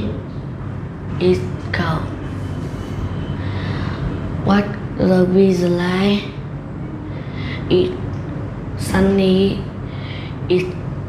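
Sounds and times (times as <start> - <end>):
steady hum and hiss: 0.0 - 11.0.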